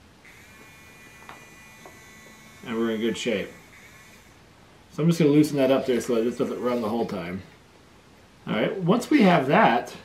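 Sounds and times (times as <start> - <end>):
small motor whining: 0.2 - 4.4.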